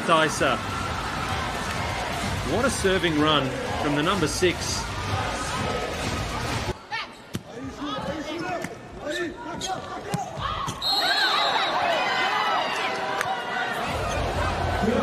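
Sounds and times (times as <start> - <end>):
crowd cheering: 0.0 - 6.7, 10.4 - 15.0.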